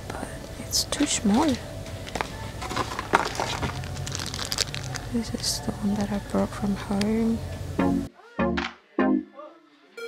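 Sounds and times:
low background hum: 0.0s - 8.1s
handling clicks and rustles: 1.0s - 5.2s.

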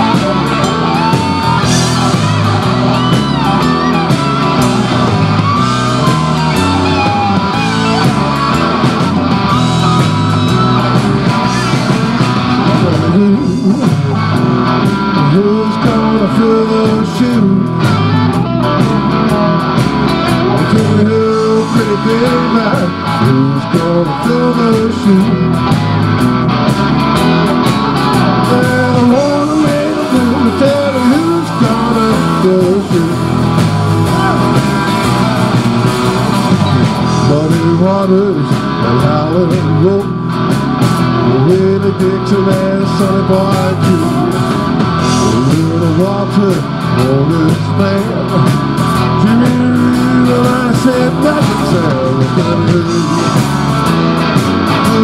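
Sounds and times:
bass guitar: 0.0s - 55.0s
drums and cymbals: 0.0s - 55.0s
electric guitar lead: 0.0s - 55.0s.

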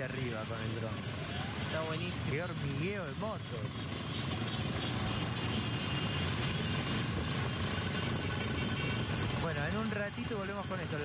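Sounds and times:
motorcycle engines rumbling: 0.0s - 11.0s.

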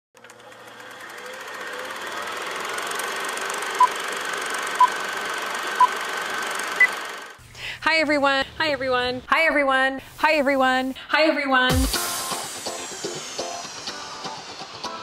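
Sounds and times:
film projector whirring clatter: 0.2s - 7.4s.

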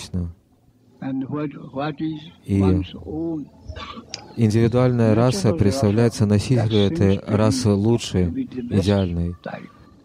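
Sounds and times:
man speaking hesitantly: 1.2s - 9.8s.

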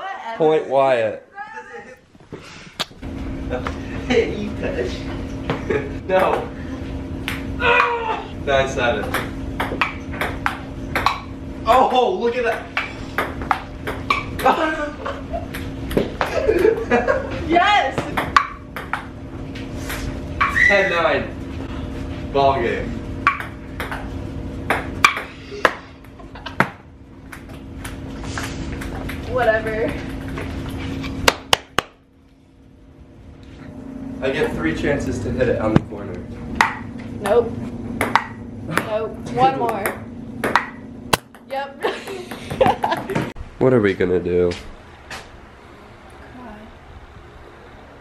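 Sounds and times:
low room hum: 0.0s - 48.0s
table tennis ball hits: 7.2s - 7.9s, 9.0s - 14.6s, 15.5s - 16.4s, 18.0s - 19.1s, 23.2s - 24.1s, 24.7s - 25.9s, 26.6s - 30.4s, 31.2s - 32.0s, 36.6s - 36.9s, 38.0s - 43.3s
ping-pong ball taps: 9.0s - 11.3s, 18.0s - 19.1s, 23.3s - 24.1s, 24.7s - 25.8s, 38.0s - 39.0s, 39.6s - 41.5s.

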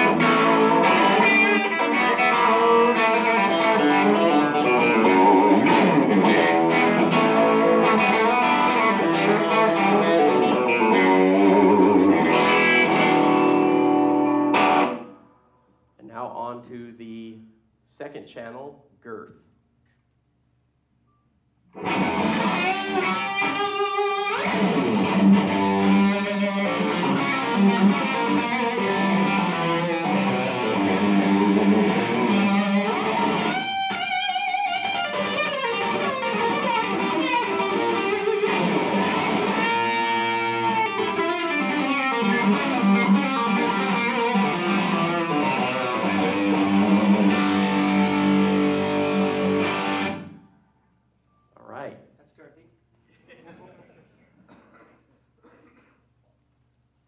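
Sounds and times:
electric guitar: 0.0s - 15.2s, 21.7s - 50.5s.

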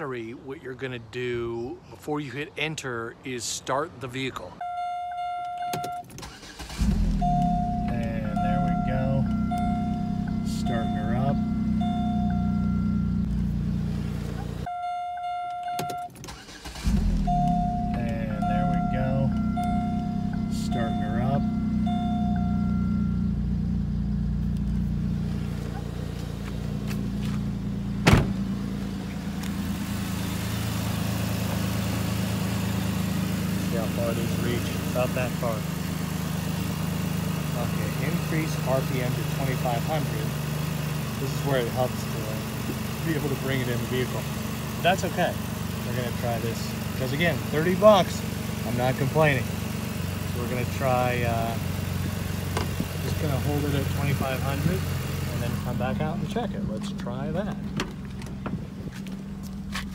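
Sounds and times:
dashboard warning chime: 4.6s - 6.5s, 7.1s - 23.6s
car engine starting and idling: 4.6s - 59.9s.

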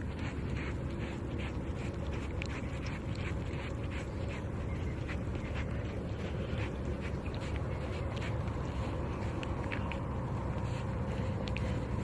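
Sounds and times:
deer licking and sniffing: 0.0s - 12.0s
low background rumble: 0.0s - 12.0s.

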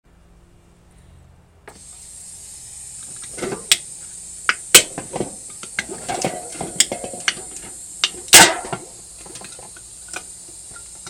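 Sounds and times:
steady high hiss: 0.1s - 11.0s
soda cans clinking: 4.5s - 11.0s.

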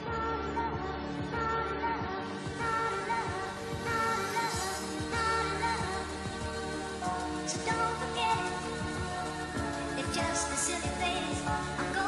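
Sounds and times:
hardcore dance music: 0.0s - 12.0s.

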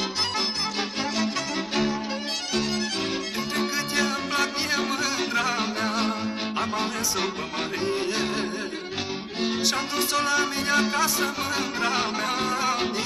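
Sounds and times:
fast ornamented folk melody: 0.0s - 13.0s.

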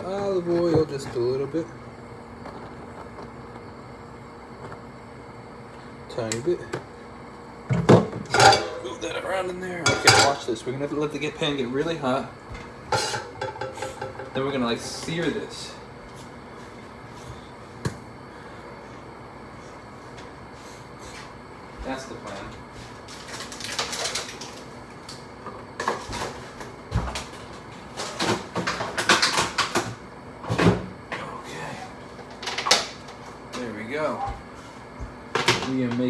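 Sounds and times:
cookware and jars knocking: 13.0s - 14.5s.

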